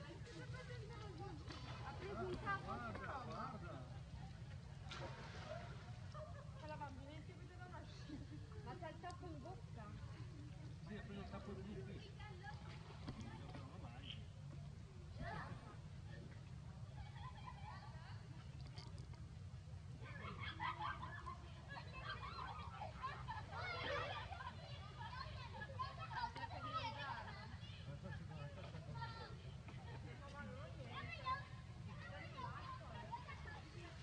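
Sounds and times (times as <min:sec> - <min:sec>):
faint voices talking: 0:00.0 - 0:34.0
low steady rumble: 0:00.0 - 0:34.0.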